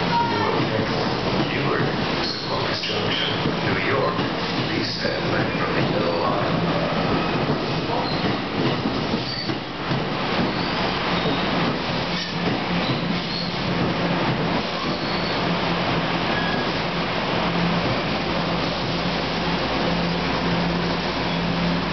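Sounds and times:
rumble of wheels on rail: 0:00.0 - 0:21.9.

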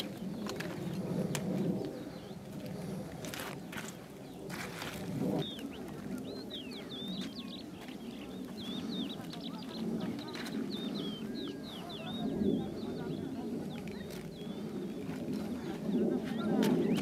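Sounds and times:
high chirping birds: 0:00.0 - 0:02.6, 0:03.6 - 0:17.0
low cooing birds: 0:00.0 - 0:17.0.

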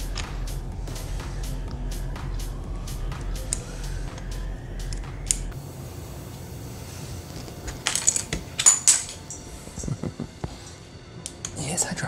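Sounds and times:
plastic pieces clattering on table: 0:07.7 - 0:10.0.

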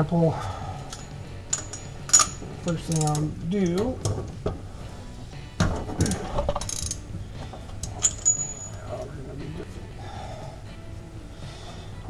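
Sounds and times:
metal hand tools clinking: 0:00.8 - 0:03.9, 0:07.7 - 0:09.2
high metallic ring: 0:08.0 - 0:09.0.

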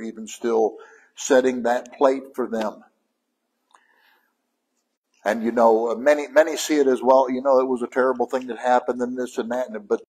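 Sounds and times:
soft breath: 0:00.8 - 0:01.2, 0:03.7 - 0:04.4.

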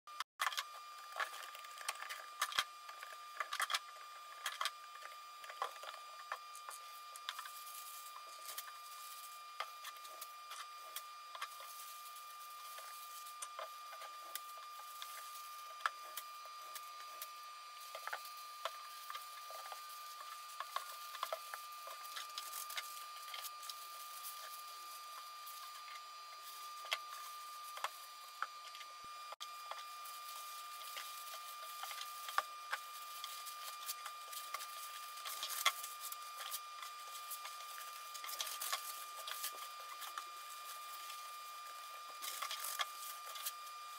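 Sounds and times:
faint steady whine: 0:00.4 - 0:43.9
paper rustling and crinkling: 0:29.6 - 0:43.8.

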